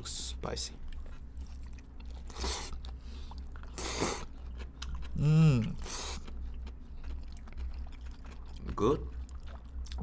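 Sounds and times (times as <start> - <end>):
person slurping noodles: 3.7 - 4.3, 5.2 - 6.2.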